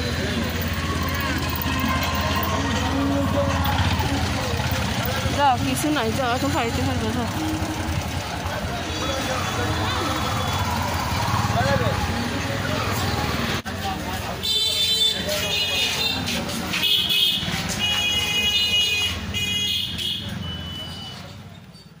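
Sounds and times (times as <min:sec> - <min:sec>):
people talking: 0:00.0 - 0:17.2
street noise: 0:00.0 - 0:22.0.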